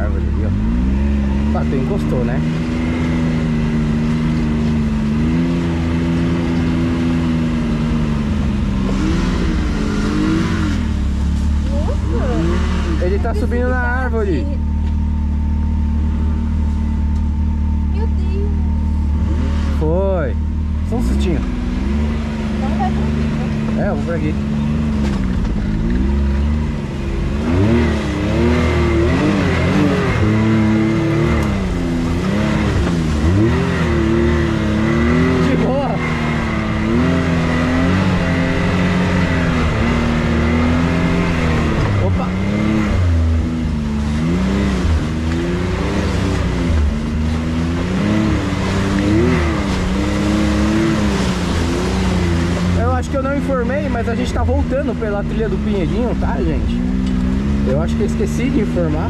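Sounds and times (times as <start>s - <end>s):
engine revving: 0.0s - 59.0s.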